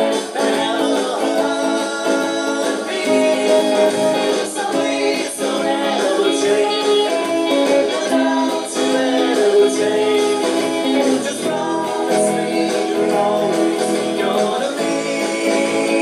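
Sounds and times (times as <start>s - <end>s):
electric guitar: 0.0s - 16.0s
person singing: 0.0s - 16.0s.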